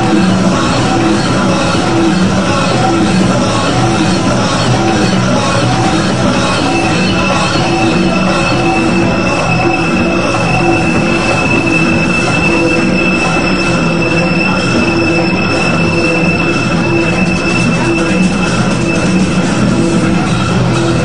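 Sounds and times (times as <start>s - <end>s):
electronic rave music: 0.0s - 21.0s
high-pitched screeching tone: 0.0s - 21.0s
low synth notes: 0.0s - 21.0s.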